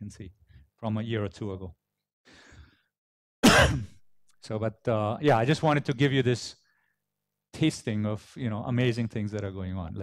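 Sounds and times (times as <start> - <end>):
man coughing: 3.4 - 4.0.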